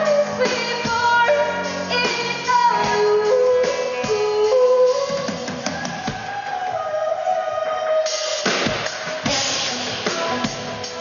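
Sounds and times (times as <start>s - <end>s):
pop-rock band playing: 0.0s - 6.7s, 8.0s - 11.0s.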